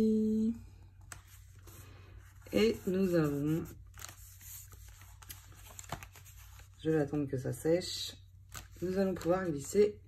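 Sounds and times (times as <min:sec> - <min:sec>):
paper rustling: 0:01.0 - 0:06.8, 0:08.5 - 0:09.9.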